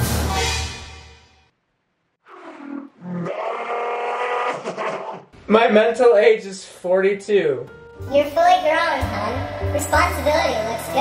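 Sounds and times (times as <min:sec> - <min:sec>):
man groaning: 0:03.2 - 0:05.3.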